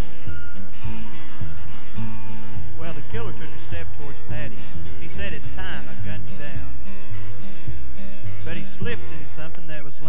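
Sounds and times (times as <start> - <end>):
bluegrass band playing: 0.0 - 10.0.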